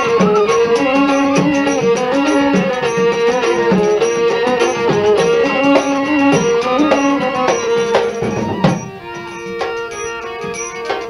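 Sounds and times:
hand drum strokes: 0:00.0 - 0:11.0
held instrumental melody: 0:00.0 - 0:11.0.

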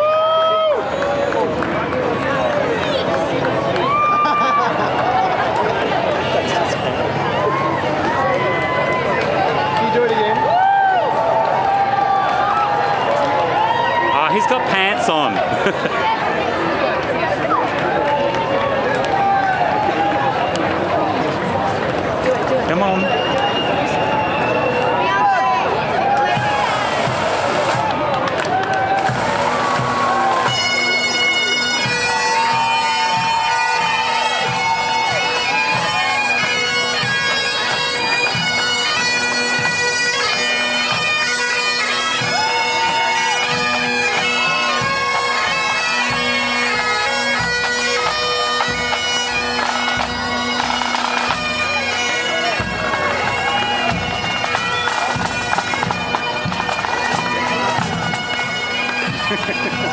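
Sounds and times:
snare and bass drums: 0:26.3 - 0:28.0, 0:28.9 - 0:30.8, 0:52.4 - 0:59.9
bagpipes playing: 0:26.4 - 0:27.8, 0:28.9 - 0:59.9.

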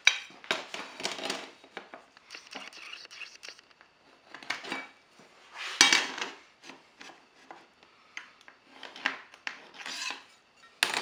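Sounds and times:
metal square scraping on panel: 0:09.6 - 0:10.8.

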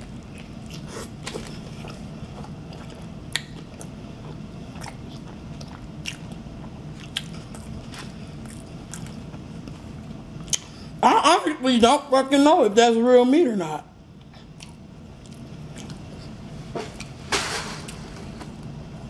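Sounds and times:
person chewing food: 0:00.0 - 0:10.8, 0:14.2 - 0:17.2
low steady hum: 0:00.0 - 0:19.0.

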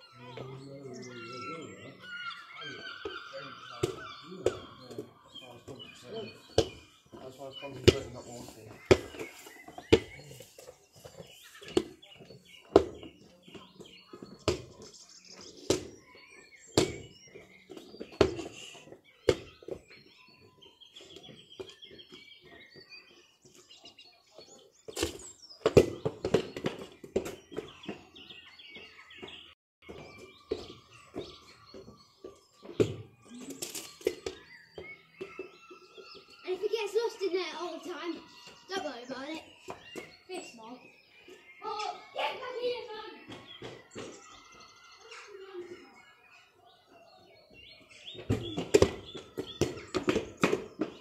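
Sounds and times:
faint birds chirping: 0:00.0 - 0:51.0
football kicked and bouncing: 0:06.5 - 0:10.2, 0:11.1 - 0:14.9, 0:15.6 - 0:18.5, 0:19.2 - 0:20.1, 0:24.9 - 0:28.1, 0:29.8 - 0:33.3, 0:48.1 - 0:51.0.

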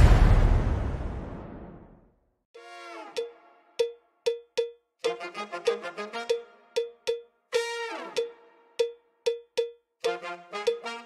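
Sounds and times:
struck percussion hits ringing: 0:03.2 - 0:04.7, 0:08.2 - 0:09.7.

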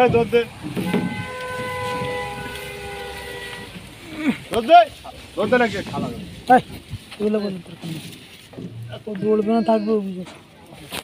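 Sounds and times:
two-note horn: 0:00.8 - 0:04.0.

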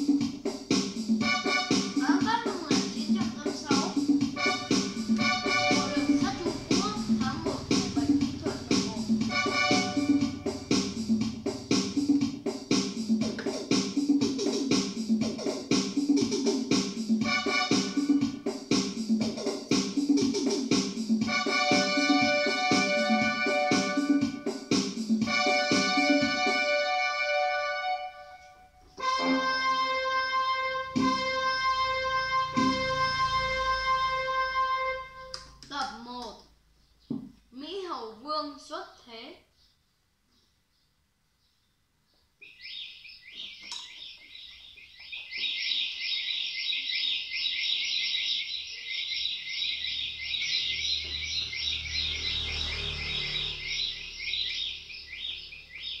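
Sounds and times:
electronic keyboard melody with rhythm: 0:00.0 - 0:35.6
keyboard held chords: 0:04.0 - 0:12.2, 0:21.2 - 0:35.5.

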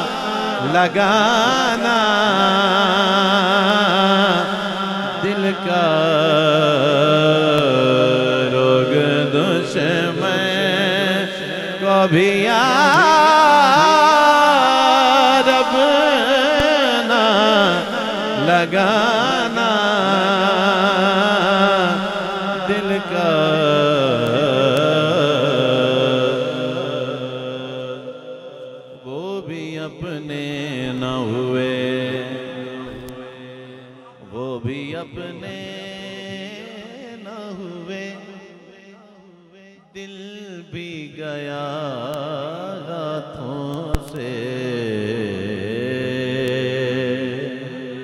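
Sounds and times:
drone of voices: 0:00.0 - 0:38.4
person singing devotional song: 0:00.0 - 0:48.0.

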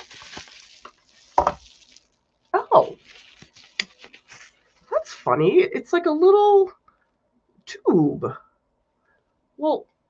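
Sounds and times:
bubble wrap crinkling: 0:00.0 - 0:05.5.

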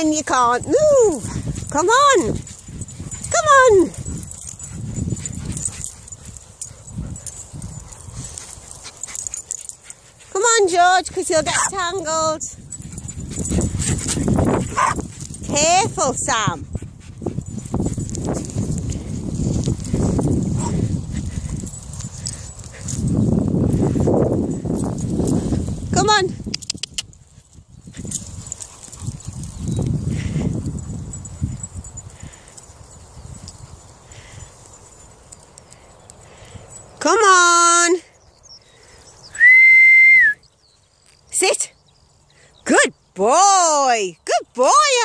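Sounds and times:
dogs moving in grass: 0:00.0 - 0:16.6, 0:17.2 - 0:25.9, 0:27.0 - 0:37.0
person whistling high note: 0:39.3 - 0:40.4.

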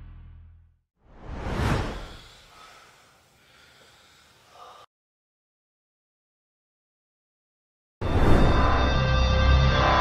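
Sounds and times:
whoosh transition effect: 0:01.1 - 0:02.3.

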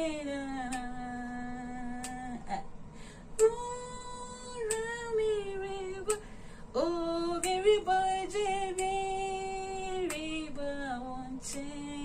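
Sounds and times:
woman singing hymn unaccompanied: 0:00.0 - 0:02.7, 0:03.4 - 0:12.0.

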